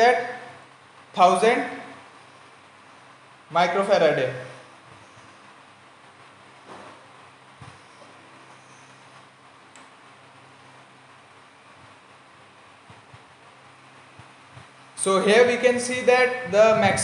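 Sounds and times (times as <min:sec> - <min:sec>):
low hum: 0:04.2 - 0:17.0.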